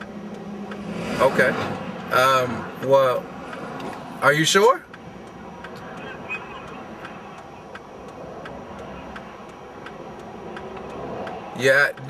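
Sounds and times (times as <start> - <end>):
freeway traffic: 0.0 - 12.0
fast regular ticking: 1.8 - 12.0.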